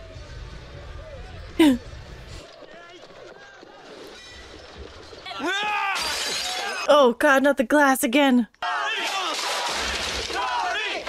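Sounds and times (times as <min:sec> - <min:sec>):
glass shattering: 0:03.8 - 0:06.9, 0:09.3 - 0:10.5.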